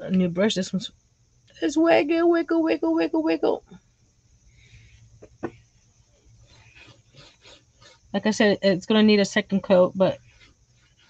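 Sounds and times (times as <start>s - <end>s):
paintbrush rubbing: 5.7s - 8.1s, 10.1s - 11.0s.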